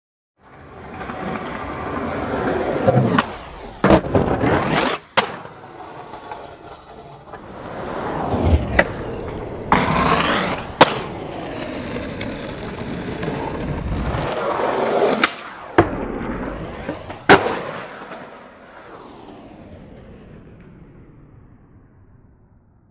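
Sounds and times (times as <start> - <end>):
skateboard crack: 0.4 - 19.0
skateboard wheels rolling on pavement: 0.4 - 19.8
skateboard landing slap: 2.8 - 7.8, 9.7 - 12.3, 14.2 - 18.9.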